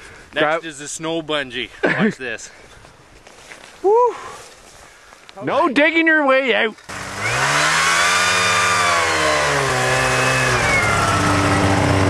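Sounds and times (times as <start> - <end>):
snowmobile engine revving: 6.8 - 12.0.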